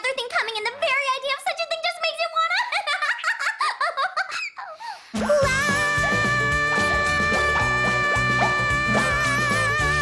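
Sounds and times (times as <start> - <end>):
high-pitched cartoon giggling: 7.3 - 10.0.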